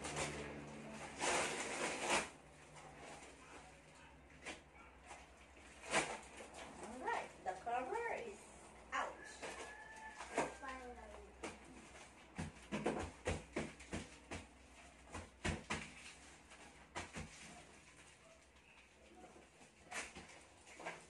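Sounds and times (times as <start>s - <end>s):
cardboard crackling and rustling: 0.0s - 8.1s, 9.2s - 21.0s.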